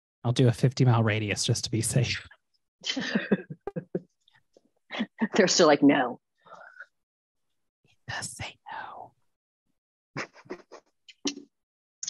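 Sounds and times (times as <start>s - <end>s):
person whispering: 0.3s - 2.3s, 8.1s - 9.1s.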